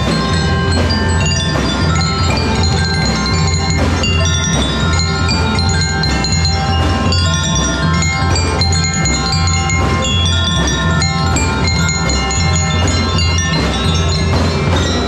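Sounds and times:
bell lyres and marimbas: 0.0 - 15.0
drum and lyre band playing: 0.0 - 15.0.

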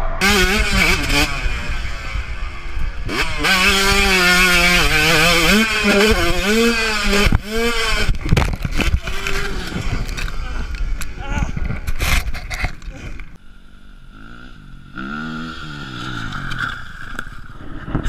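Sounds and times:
motocross bike engine revving: 0.2 - 18.0.

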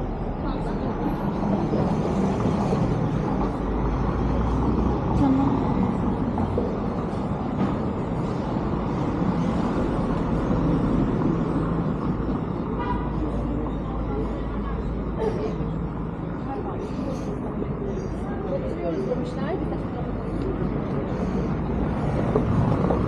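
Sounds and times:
traffic hum: 0.0 - 23.0
voices of passers-by: 0.0 - 23.0.

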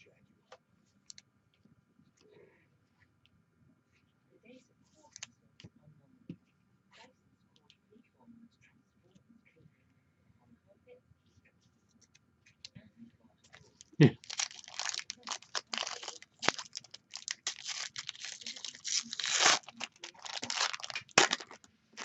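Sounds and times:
foil pack tearing and crinkling: 14.2 - 21.6.

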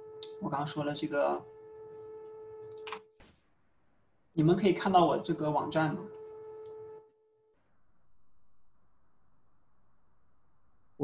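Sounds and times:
faint high whine: 0.0 - 3.0, 4.3 - 11.0.

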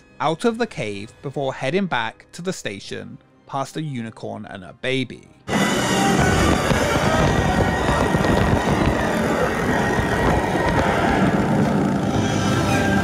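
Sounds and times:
music: 0.0 - 13.0
roller coaster rushing on track: 5.5 - 13.0.

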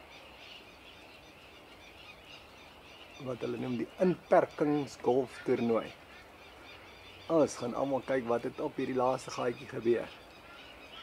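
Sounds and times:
distant birds calling: 0.0 - 11.0.

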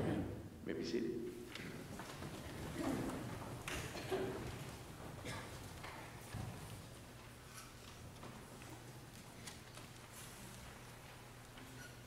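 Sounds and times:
faint footsteps: 1.3 - 12.0.

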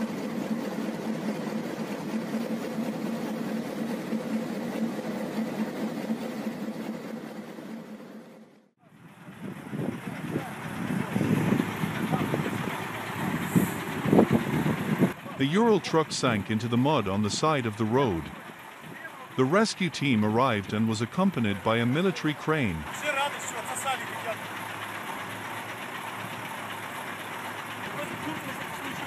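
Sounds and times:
diesel engine humming: 0.0 - 29.0
rough uneven engine sound: 0.0 - 29.0.

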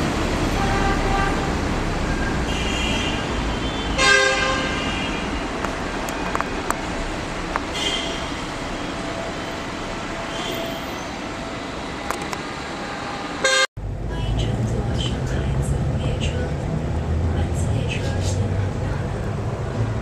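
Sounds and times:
station platform ambience: 3.2 - 20.0.

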